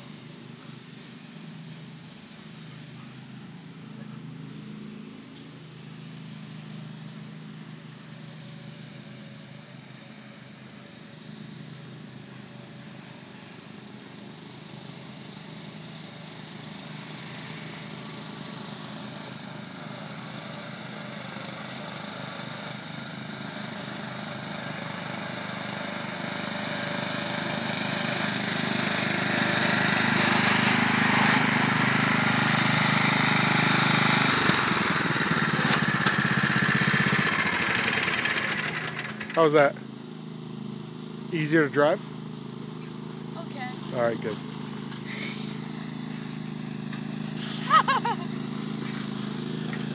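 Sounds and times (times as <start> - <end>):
riding lawn mower engine: 0.0 - 49.9.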